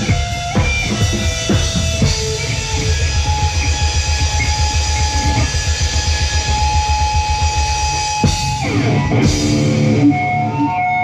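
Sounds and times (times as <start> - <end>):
rapid bass drum kicks: 0.0 - 9.9.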